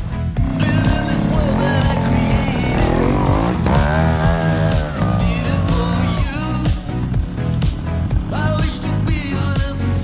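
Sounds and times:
background music: 0.0 - 10.0
motorcycle engine revving: 0.3 - 9.4.

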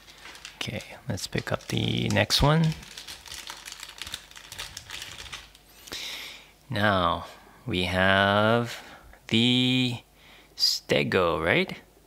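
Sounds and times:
hands handling plastic toy: 0.0 - 5.7.

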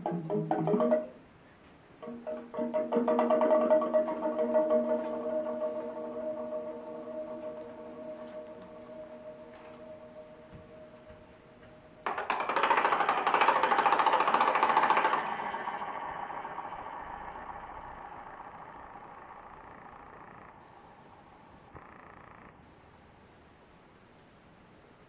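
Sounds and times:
steady electronic tone: 2.0 - 12.0, 12.6 - 23.1
loud rapid rattling buzz: 12.0 - 22.7.

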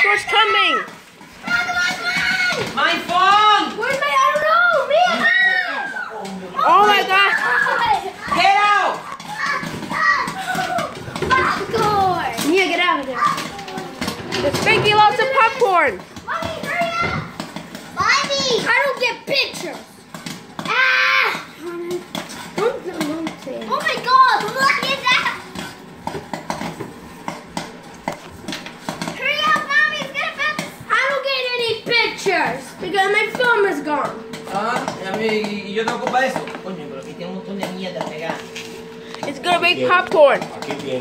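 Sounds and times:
children calling out: 0.0 - 2.8, 3.7 - 12.4, 16.3 - 17.4, 20.6 - 22.1
popcorn kernels popping: 6.6 - 36.7, 37.6 - 41.0.

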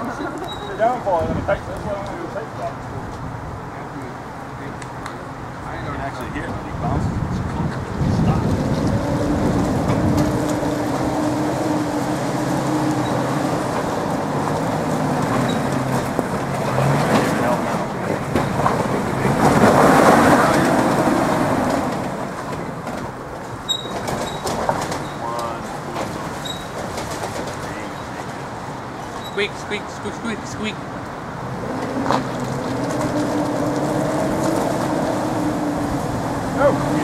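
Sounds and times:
truck squeaking: 0.0 - 1.4, 5.6 - 6.4, 7.6 - 37.0
off-road vehicle engine: 0.0 - 37.0.

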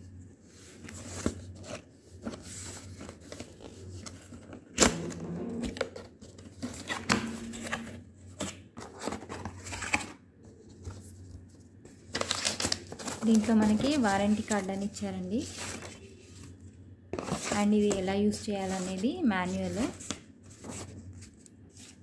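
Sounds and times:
cardboard and paper rustling: 0.4 - 22.0.

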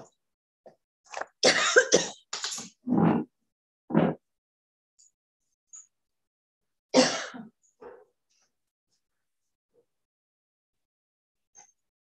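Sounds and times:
person coughing: 1.4 - 2.2, 7.0 - 7.6.

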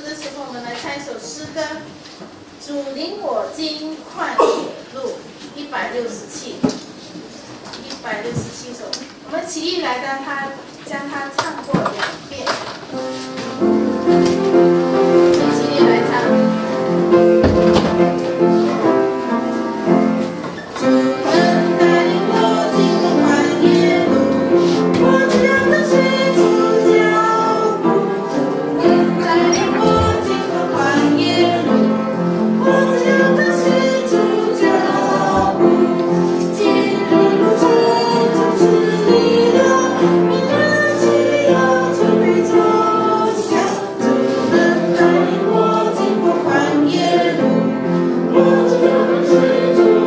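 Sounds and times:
instrumental hymn accompaniment: 10.4 - 50.0
congregation singing: 12.9 - 50.0.

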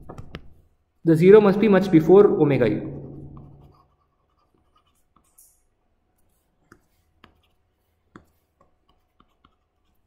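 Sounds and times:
stylus scratch on tablet: 3.1 - 5.5, 6.2 - 10.0.

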